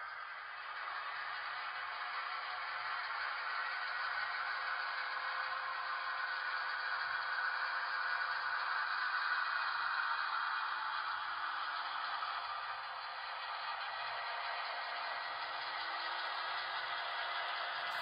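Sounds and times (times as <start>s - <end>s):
model train rolling on track: 0.0s - 18.0s.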